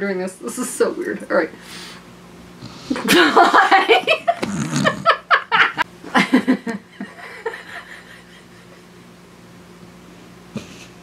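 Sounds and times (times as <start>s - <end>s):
woman giggling: 3.0s - 8.9s.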